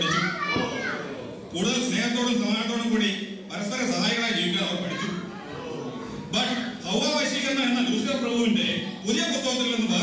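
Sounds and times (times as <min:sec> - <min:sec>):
high child-like voice: 0:00.0 - 0:01.1.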